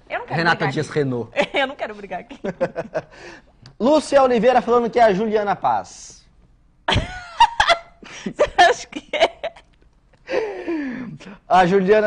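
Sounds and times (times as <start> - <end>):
people laughing: 2.3 - 3.2.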